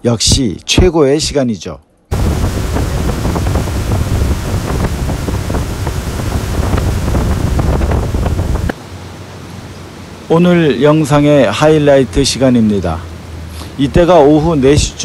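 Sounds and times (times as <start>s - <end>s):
wind buffeting microphone: 2.1s - 8.8s
water rushing past boat: 2.1s - 15.0s.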